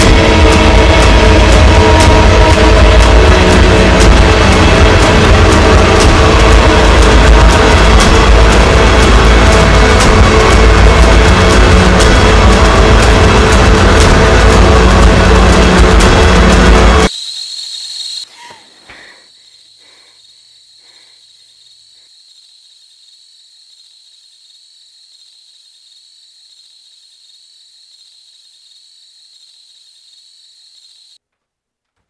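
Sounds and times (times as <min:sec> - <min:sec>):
horror film score: 0:00.0 - 0:26.4.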